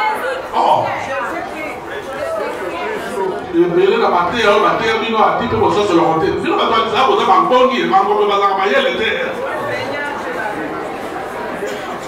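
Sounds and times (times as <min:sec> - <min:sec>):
man preaching into a microphone: 0:03.5 - 0:09.4.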